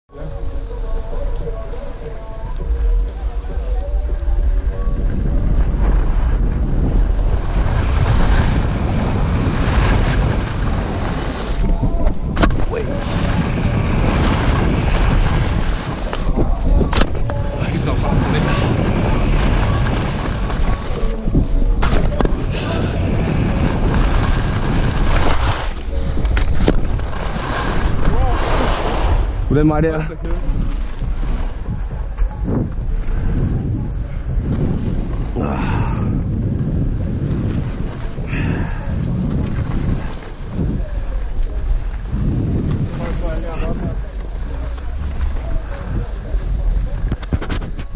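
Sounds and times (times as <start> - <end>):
wind buffeting microphone: 0.1 - 47.9
skis scraping over snow: 0.3 - 47.9.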